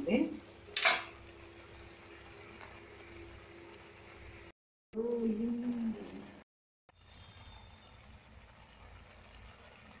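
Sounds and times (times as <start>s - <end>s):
curry simmering in a pan: 0.0s - 10.0s.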